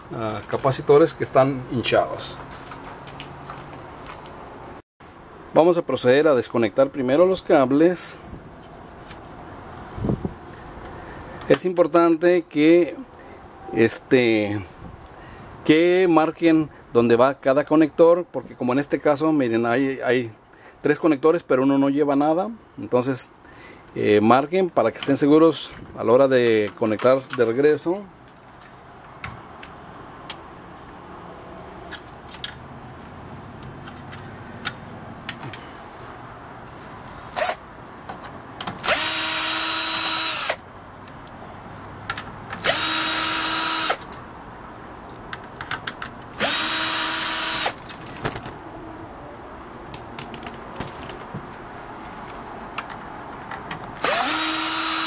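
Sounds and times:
cordless drill whine: 0:38.8 - 0:40.6, 0:42.6 - 0:44.0, 0:46.4 - 0:47.8, 0:54.0 - 0:55.0.

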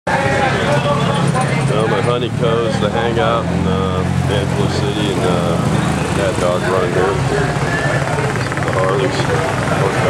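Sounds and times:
people talking: 0:00.1 - 0:10.0
vehicle engines humming: 0:00.1 - 0:10.0.

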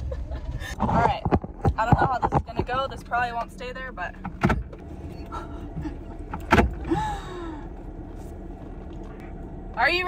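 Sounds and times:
van engine idling: 0:00.0 - 0:10.0.

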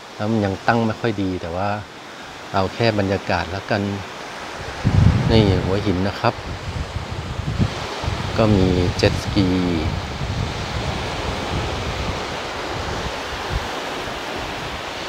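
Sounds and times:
gentle surf on a beach: 0:00.0 - 0:15.0
sea breeze: 0:00.0 - 0:15.0
wind buffeting microphone: 0:02.5 - 0:15.0.

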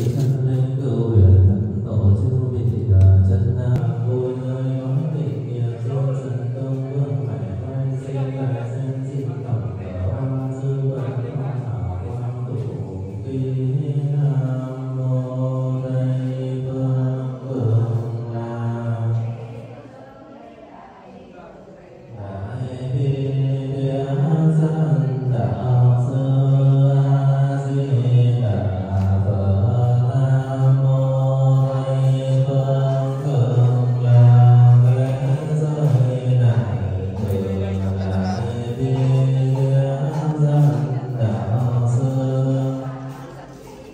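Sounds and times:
man chanting prayer: 0:00.0 - 0:43.9.

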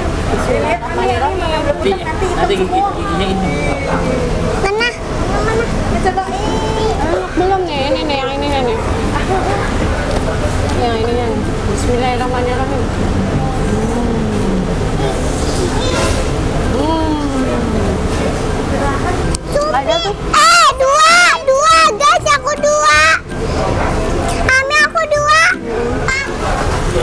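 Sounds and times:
faint distant voices: 0:00.0 - 0:27.0
low background noise: 0:00.0 - 0:27.0
children's high-pitched voices: 0:04.6 - 0:07.6, 0:14.8 - 0:17.3, 0:19.3 - 0:23.6, 0:24.3 - 0:26.6.

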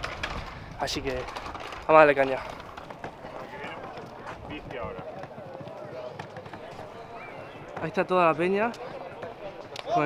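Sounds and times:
distant people talking: 0:02.2 - 0:10.0.

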